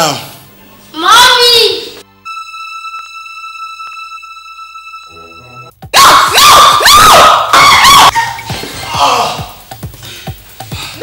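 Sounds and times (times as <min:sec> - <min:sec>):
woman screaming: 0:06.0 - 0:08.4.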